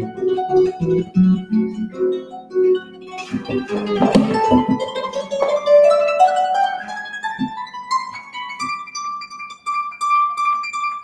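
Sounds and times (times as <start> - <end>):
harp notes plucked: 0.0 - 9.4.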